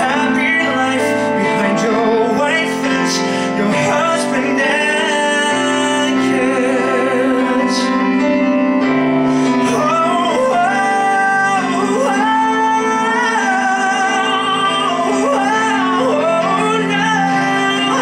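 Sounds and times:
man singing a slow ballad: 0.0 - 18.0
piano chords: 0.0 - 18.0.

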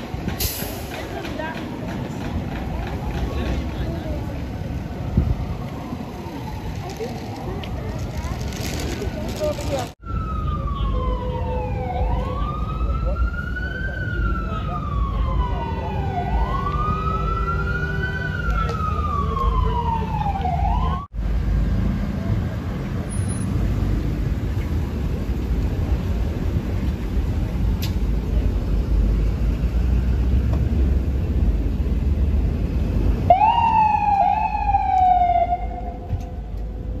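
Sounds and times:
city traffic rumble: 0.0 - 37.0
ambulance siren: 2.7 - 8.4, 10.0 - 21.1, 33.2 - 36.6
siren wailing: 10.0 - 21.1, 33.3 - 36.4.

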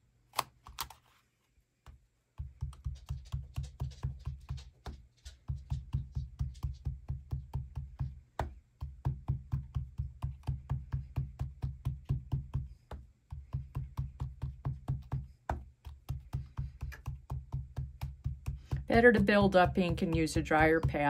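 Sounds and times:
ink pad tapping through stencil: 2.4 - 21.0.

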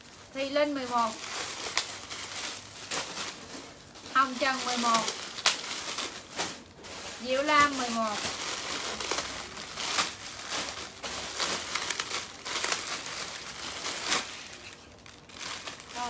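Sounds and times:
plastic bags crinkling: 0.0 - 16.0.

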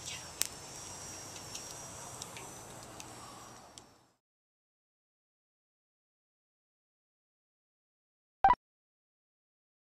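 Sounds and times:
wood fire crackling pops: 0.0 - 3.9.

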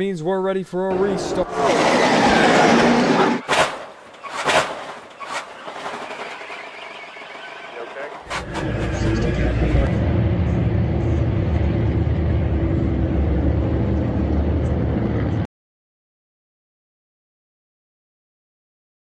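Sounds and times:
race car engines rumbling: 0.9 - 15.5.

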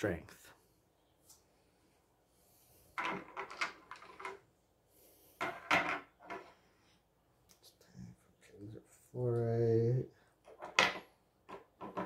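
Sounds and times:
stones knocking on wooden table: 3.0 - 4.4, 5.4 - 6.5, 10.5 - 12.0.

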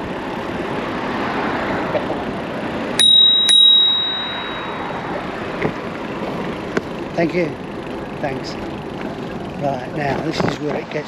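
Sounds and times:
traffic: 0.0 - 11.0
bicycle bell ringing: 3.0 - 5.4.

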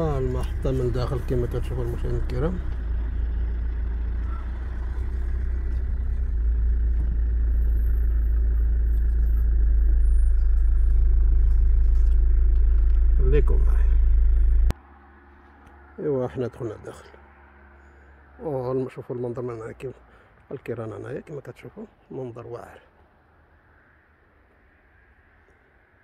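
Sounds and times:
car engine and road rumble: 0.0 - 26.0.

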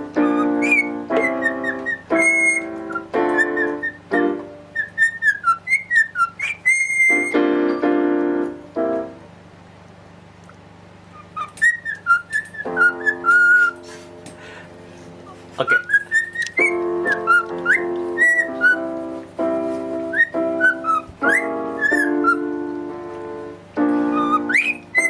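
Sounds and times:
cockatiel whistling: 0.0 - 7.5, 11.1 - 13.8, 15.6 - 19.0, 20.0 - 22.6, 24.0 - 25.0
piano chords: 0.0 - 25.0.

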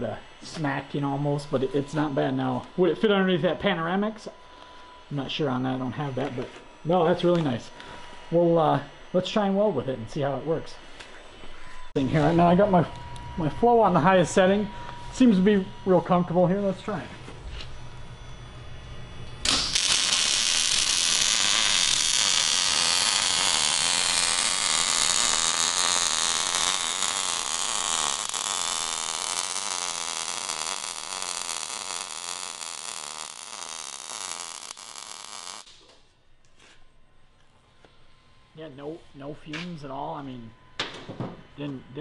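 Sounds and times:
low hum: 0.0 - 40.8
welding arc crackling: 19.4 - 36.1.

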